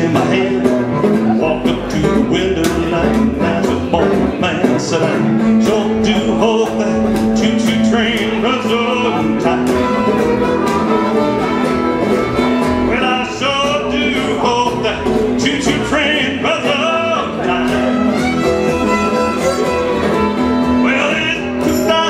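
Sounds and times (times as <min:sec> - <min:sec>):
strummed acoustic guitar: 0:00.0 - 0:22.0
upright bass: 0:00.0 - 0:22.0
fiddle playing: 0:05.2 - 0:15.5, 0:16.4 - 0:22.0.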